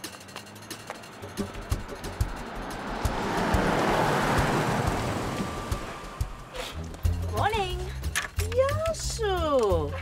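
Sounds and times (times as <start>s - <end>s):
music with low beat: 0.0s - 8.2s
car driving past: 0.4s - 7.0s.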